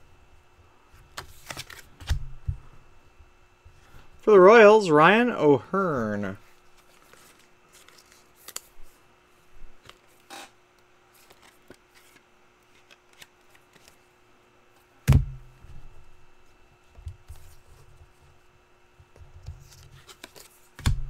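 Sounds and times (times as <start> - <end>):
trading cards clicking and rustling: 1.1 - 2.2, 6.8 - 8.8, 11.1 - 14.0, 19.6 - 21.0
loud thump: 15.1 - 15.4.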